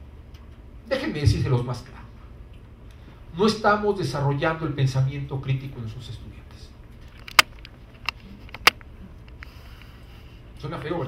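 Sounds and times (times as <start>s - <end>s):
low room hum: 0.0s - 11.0s
sharp clicks: 7.1s - 9.5s.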